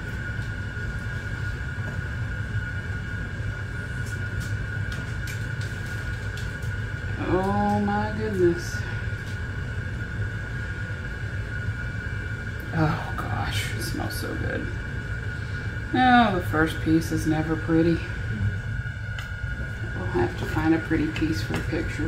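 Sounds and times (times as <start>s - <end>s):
steady low hum: 0.0s - 22.0s
person humming: 18.3s - 18.6s.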